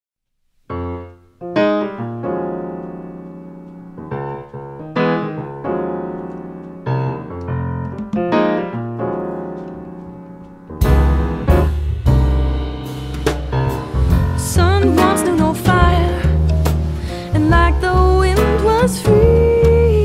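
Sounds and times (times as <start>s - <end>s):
piano chords: 0.6s - 20.0s.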